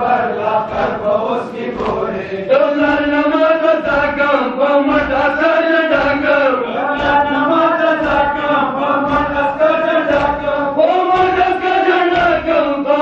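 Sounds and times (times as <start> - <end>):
men chanting a mourning lament: 0.0 - 13.0.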